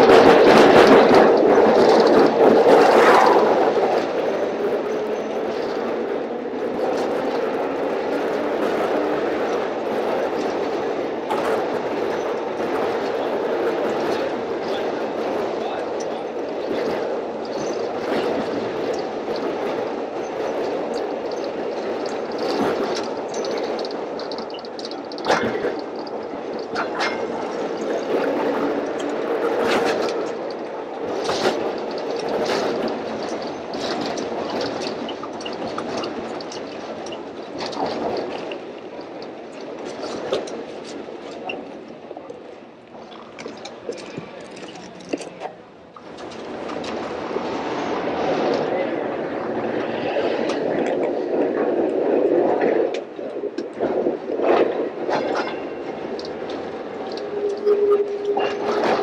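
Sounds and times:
wheel and track clicks: 0.0 - 48.7
streetcar rolling on rail: 0.0 - 59.0.

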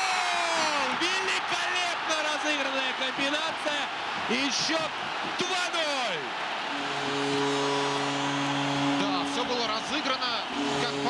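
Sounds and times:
crowd noise: 0.0 - 11.0
goal horn chord over loudspeakers: 6.7 - 11.0.

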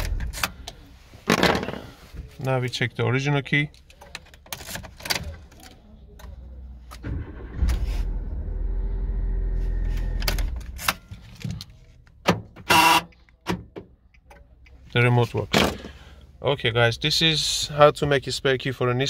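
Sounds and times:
car engine running: 6.6 - 11.5.

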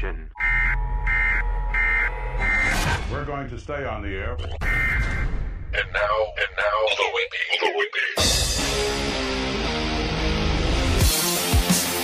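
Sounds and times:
short buzzy alert beeps: 0.4 - 2.8.

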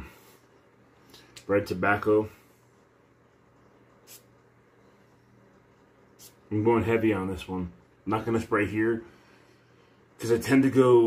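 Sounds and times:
perfume atomizer spray hiss: 3.9 - 5.3, 6.1 - 6.5.

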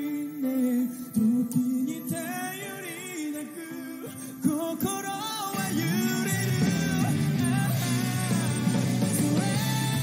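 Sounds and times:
man singing rock ballad: 0.0 - 10.0
rock band playing: 5.5 - 10.0.

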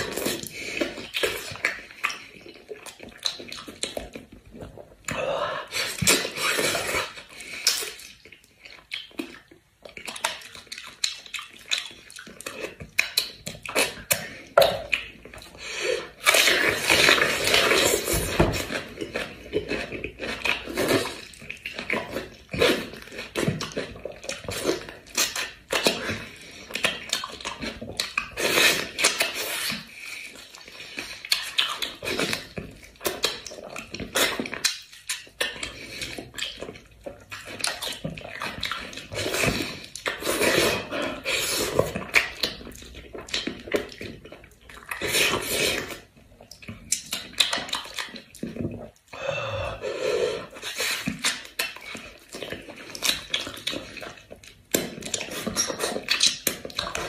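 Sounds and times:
wet chewing and smacking: 0.0 - 49.2, 50.4 - 57.0.

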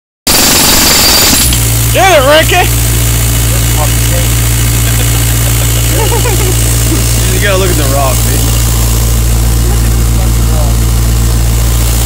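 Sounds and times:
air compressor engine hum: 0.3 - 12.0
jackhammer hammering: 0.3 - 12.0.

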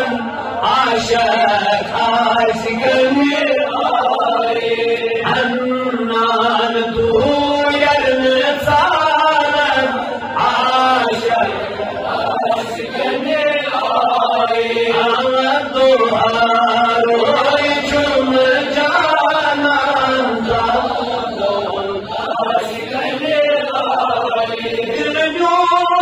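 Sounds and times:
man singing into a microphone: 0.0 - 26.0.

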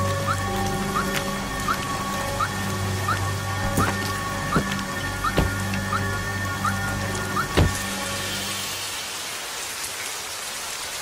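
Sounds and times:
low drone: 0.0 - 9.4
heavy rain: 0.0 - 11.0.

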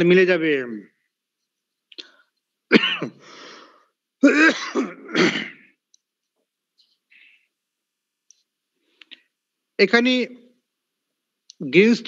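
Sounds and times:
man clearing his throat: 2.7 - 3.2, 4.2 - 5.8.

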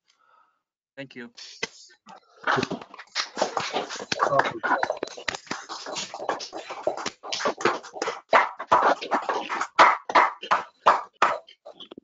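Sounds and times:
people clapping over call audio: 1.4 - 12.0.

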